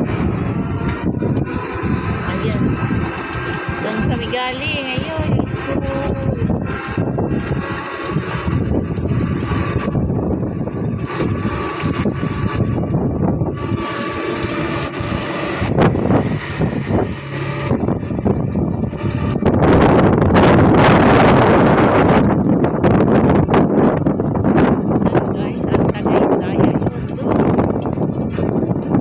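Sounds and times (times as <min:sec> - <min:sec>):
continuous rushing noise: 0:00.0 - 0:29.0
motor vehicle running: 0:00.0 - 0:29.0.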